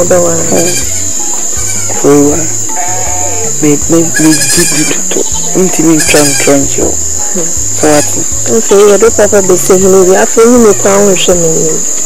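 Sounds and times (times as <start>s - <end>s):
people talking: 0.0s - 0.9s, 2.0s - 11.8s
crickets chirping: 0.0s - 12.0s.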